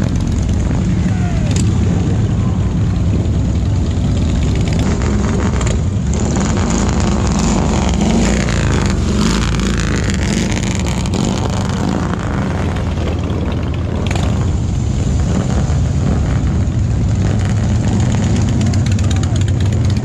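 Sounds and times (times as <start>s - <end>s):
motorcycle engines rumbling past: 0.0s - 20.0s.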